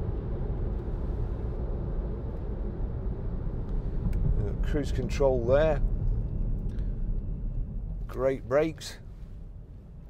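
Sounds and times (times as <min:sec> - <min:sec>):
road and engine rumble in car: 0:00.0 - 0:10.0.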